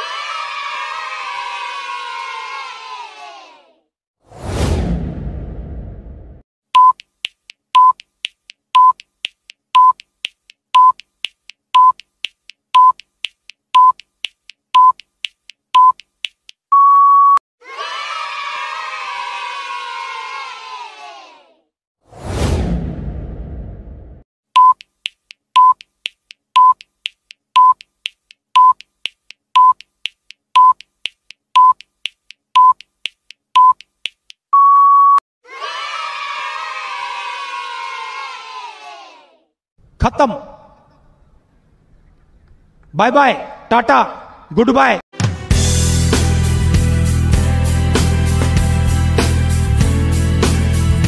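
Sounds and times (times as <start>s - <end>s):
children cheering: 0.0s - 3.8s, 17.6s - 21.6s, 35.4s - 39.4s
short electronic beeps: 6.8s - 7.0s, 7.8s - 8.0s, 8.8s - 9.0s, 9.8s - 10.0s, 10.8s - 11.0s, 11.8s - 12.0s, 12.8s - 13.0s, 13.8s - 14.0s, 14.8s - 15.0s, 15.8s - 16.0s, 16.7s - 17.4s, 24.6s - 24.8s, 25.6s - 25.8s, 26.6s - 26.8s, 27.6s - 27.8s, 28.6s - 28.8s, 29.6s - 29.8s, 30.6s - 30.8s, 31.6s - 31.8s, 32.6s - 32.8s, 34.5s - 35.2s
longer electronic beep: 16.7s - 17.4s, 34.6s - 35.2s.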